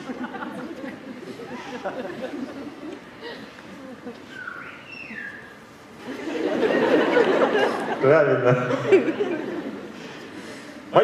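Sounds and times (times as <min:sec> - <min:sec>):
audience talking: 0:06.0 - 0:11.0.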